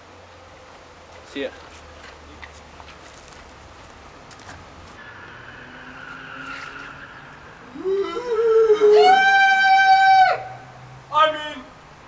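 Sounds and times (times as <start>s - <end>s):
person screaming: 7.7s - 10.6s.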